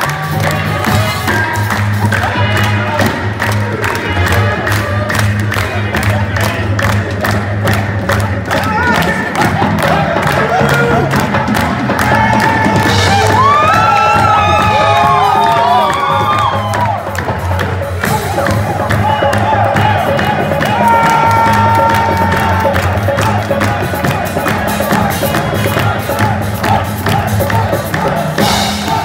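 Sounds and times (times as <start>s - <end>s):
crowd cheering and shouting: 0.0s - 29.0s
fast even beat: 0.0s - 29.0s.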